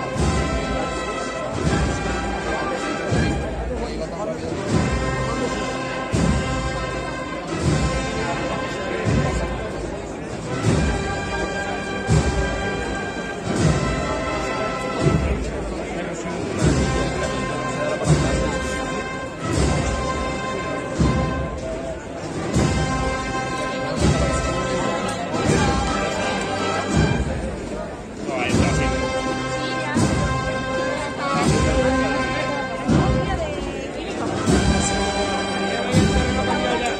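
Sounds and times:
brass band sustained chords: 0.0s - 36.9s
heavy drum beats: 0.0s - 36.9s.

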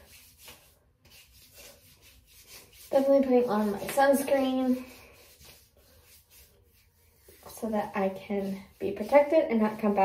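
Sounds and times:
hands rubbing skin: 0.0s - 10.0s.

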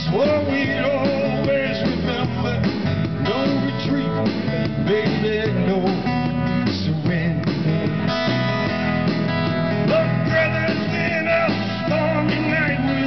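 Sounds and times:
person singing: 0.0s - 7.9s, 9.9s - 13.0s
electric guitar strummed: 0.0s - 13.0s.

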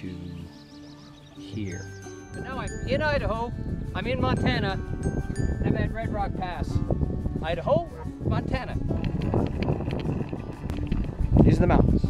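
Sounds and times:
wind buffeting microphone: 2.3s - 12.0s
bike tyres rolling on gravel: 8.9s - 11.5s.

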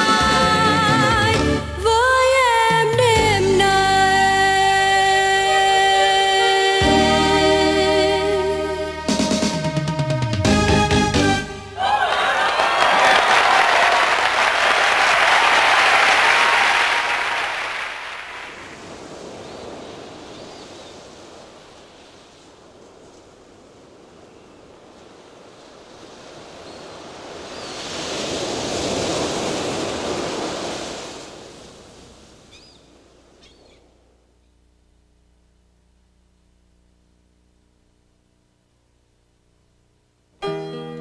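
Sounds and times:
audience applause: 11.8s - 18.8s
ocean waves washing in: 11.8s - 33.4s.

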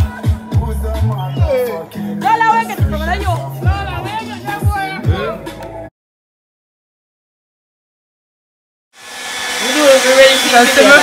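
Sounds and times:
hair dryer running: 9.0s - 11.0s.

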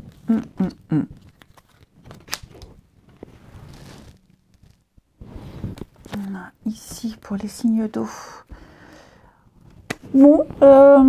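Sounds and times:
cards rustling: 1.2s - 4.9s
soft sliding rustle: 3.2s - 6.2s.

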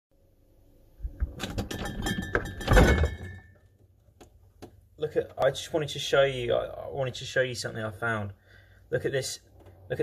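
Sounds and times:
glass and cans clinking: 1.4s - 3.6s.

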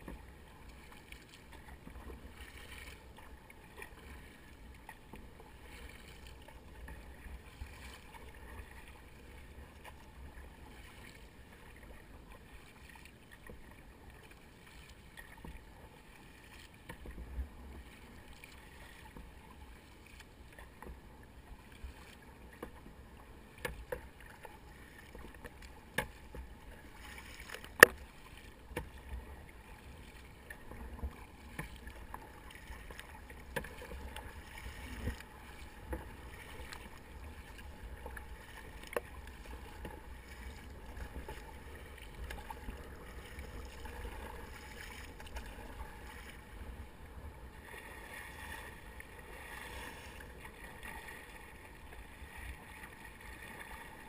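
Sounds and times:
kayak paddle strokes: 0.0s - 54.0s
water washing along hull: 0.0s - 54.0s.

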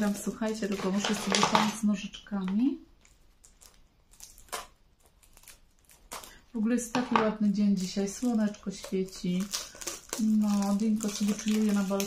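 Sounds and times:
scissors snipping plastic wrap: 0.0s - 1.8s, 7.0s - 12.0s
plastic crinkling: 0.0s - 12.0s.

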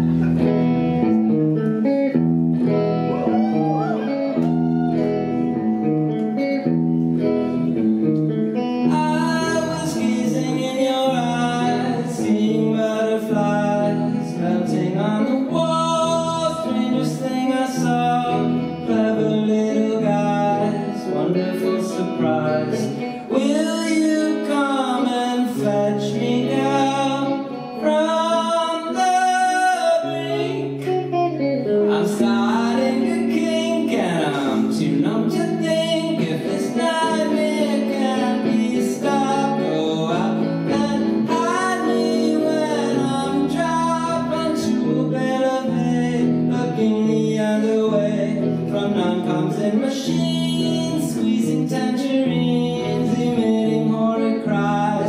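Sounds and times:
electric guitar chords: 0.0s - 55.0s
man singing: 8.5s - 55.0s.

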